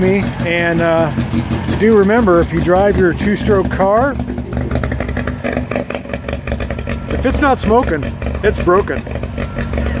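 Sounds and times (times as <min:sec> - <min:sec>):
two-stroke engine idling: 0:00.0 - 0:10.0.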